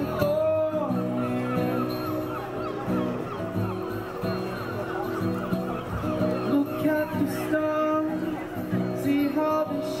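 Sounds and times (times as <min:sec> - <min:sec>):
honking bird calls: 0:00.0 - 0:09.7
acoustic guitar chords: 0:00.0 - 0:10.0.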